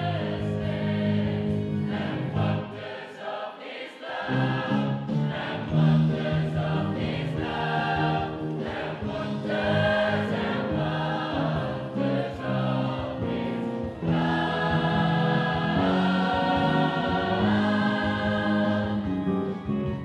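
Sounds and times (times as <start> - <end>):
gospel choir singing in harmony: 0.0 - 20.0.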